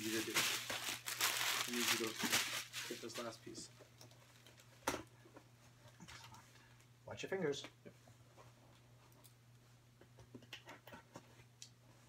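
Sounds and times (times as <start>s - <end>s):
faint handling sounds: 0.0s - 9.9s.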